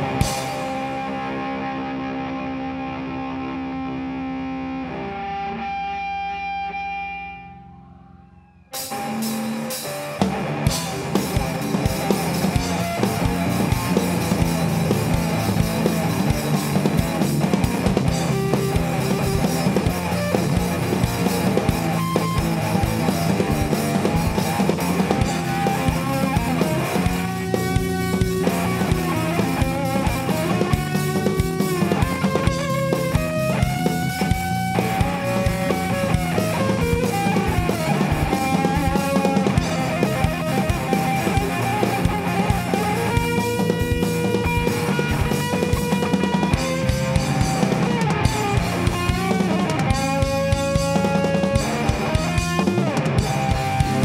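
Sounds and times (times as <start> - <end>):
rock band playing live: 0.0 - 7.9, 8.7 - 54.0
bending lead guitar line: 0.0 - 54.0.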